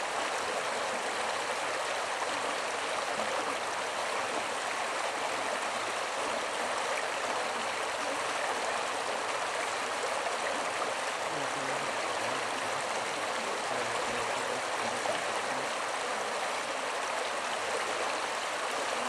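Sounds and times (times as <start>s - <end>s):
creek water running over gravel: 0.0s - 19.0s.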